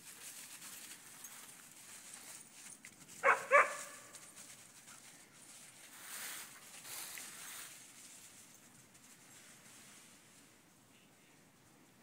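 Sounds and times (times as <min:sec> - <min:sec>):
dog barking: 0:03.2 - 0:04.1.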